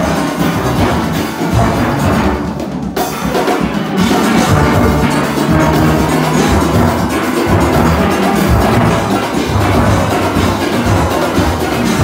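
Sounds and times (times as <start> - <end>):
steel band music: 0.0 - 12.0
deep bass steelpan notes: 3.9 - 12.0.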